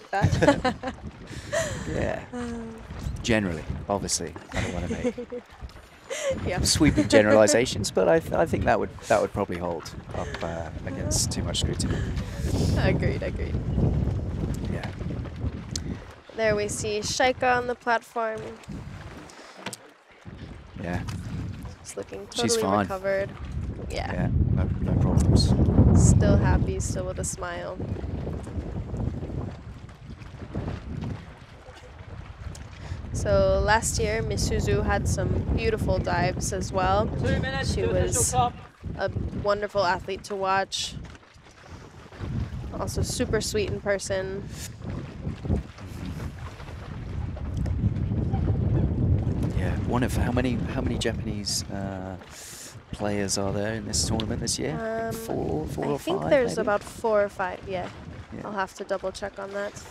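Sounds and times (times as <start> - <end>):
wind buffeting microphone: 0.0 - 19.3, 20.2 - 59.9
person saying yeah: 1.6 - 2.8, 4.6 - 5.2, 6.1 - 7.8, 10.2 - 11.3, 22.4 - 23.1, 37.6 - 38.5, 54.7 - 56.8
faint voices: 6.2 - 11.6, 22.0 - 23.2, 53.0 - 56.8.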